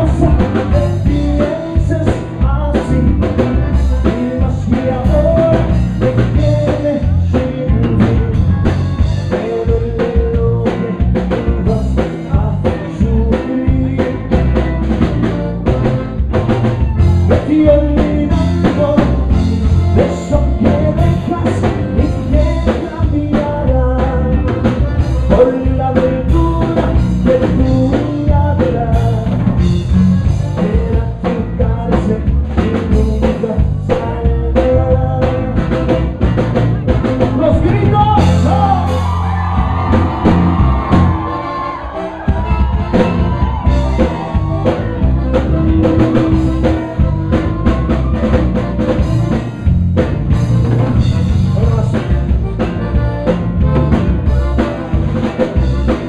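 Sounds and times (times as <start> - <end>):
button accordion: 0.0 - 56.0
congas: 0.0 - 56.0
drum kit: 0.0 - 56.0
electric bass: 0.0 - 56.0
live band playing: 0.0 - 56.0.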